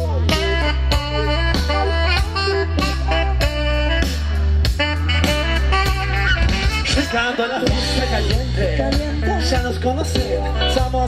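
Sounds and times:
horns playing: 0:00.0 - 0:08.5
bass and drums beat: 0:00.0 - 0:11.0
electric guitar: 0:00.0 - 0:11.0.

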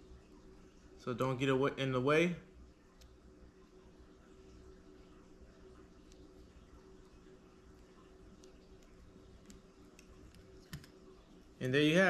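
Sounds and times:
faint steady hum: 0:00.0 - 0:12.0
faint small clicks: 0:02.9 - 0:03.2, 0:06.0 - 0:06.3, 0:08.3 - 0:11.0.

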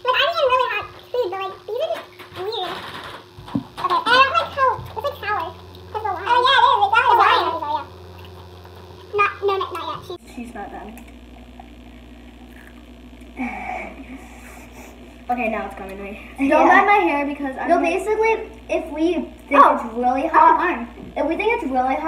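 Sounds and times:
girls talking: 0:00.0 - 0:02.8, 0:03.8 - 0:07.9, 0:09.1 - 0:11.0, 0:15.3 - 0:22.0
low hum of room noise: 0:00.0 - 0:22.0.

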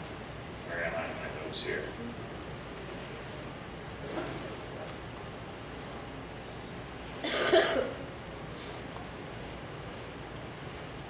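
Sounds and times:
person coughing: 0:07.2 - 0:08.0.

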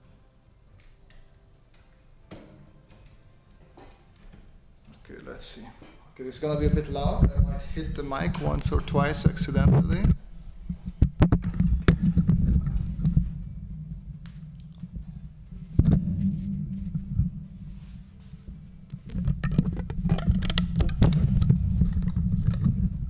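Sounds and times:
microphone handling rubs and bumps: 0:06.4 - 0:23.0.

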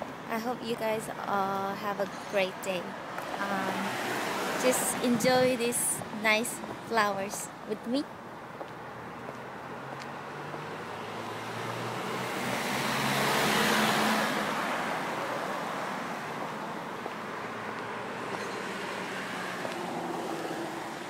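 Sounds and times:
car driving past: 0:09.8 - 0:16.5.

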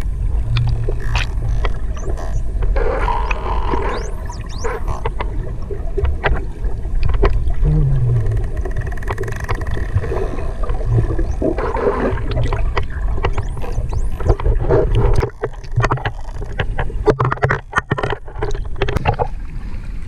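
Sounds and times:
underwater clicks and crackles: 0:00.0 - 0:19.7
underwater low rumble: 0:00.0 - 0:20.0.

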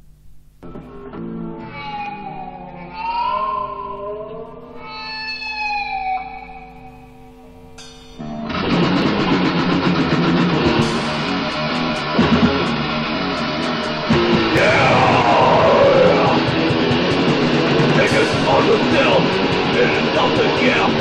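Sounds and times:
electric guitar bending sustained notes: 0:00.6 - 0:21.0
cymbal hits: 0:07.8 - 0:08.2
heavy metal band playing: 0:07.8 - 0:21.0.

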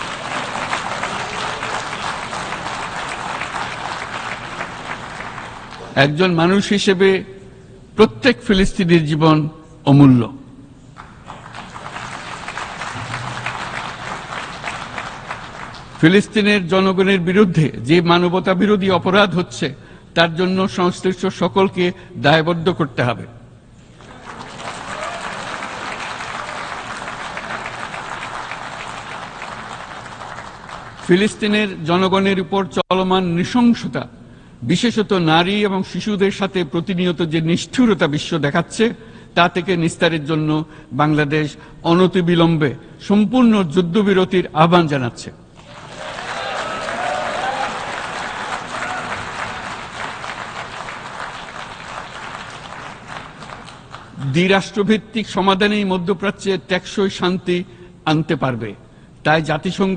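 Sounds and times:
audience applauding: 0:00.0 - 0:06.0, 0:11.0 - 0:16.0, 0:23.9 - 0:31.1, 0:45.6 - 0:54.4.

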